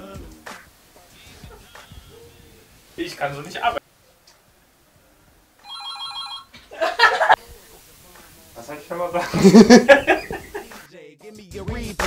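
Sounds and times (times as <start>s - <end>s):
electronic phone ringtone: 5.6s - 6.5s.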